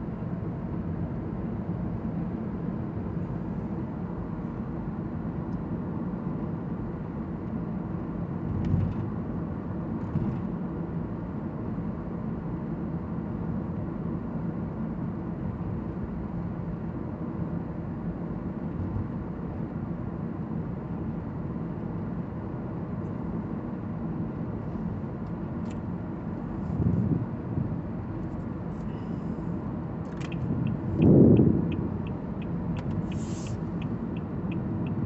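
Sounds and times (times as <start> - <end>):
road and tyre noise in car: 0.0 - 35.0.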